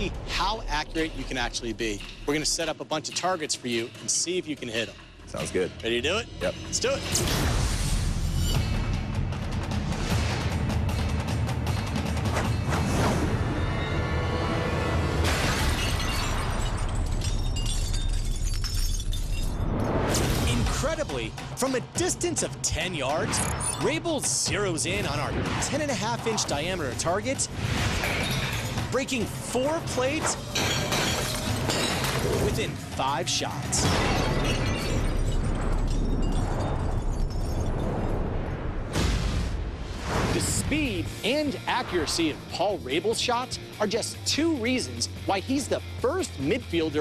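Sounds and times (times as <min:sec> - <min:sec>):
tinkling of shards: 0:15.8 - 0:19.7
plate target shattering: 0:29.9 - 0:32.8, 0:33.7 - 0:37.9.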